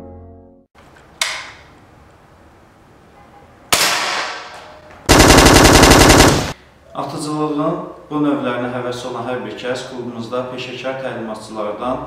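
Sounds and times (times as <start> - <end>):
single gunshots: 3.7 - 4.5
rapid automatic gunfire: 5.1 - 6.6.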